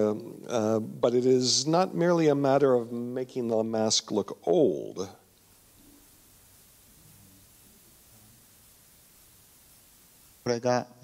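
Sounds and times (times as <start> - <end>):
man's amplified speech: 0.0 - 5.2, 10.5 - 11.0
faint low murmur: 0.0 - 11.0.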